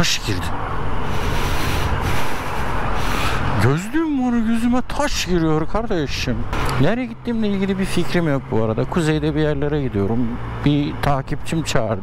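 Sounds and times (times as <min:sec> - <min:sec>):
wind rush on microphone: 0:00.6 - 0:03.7.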